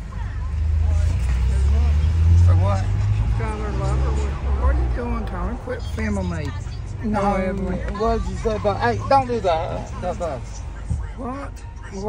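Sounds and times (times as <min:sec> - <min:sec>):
vehicle rumble inside car: 0:00.0 - 0:12.0.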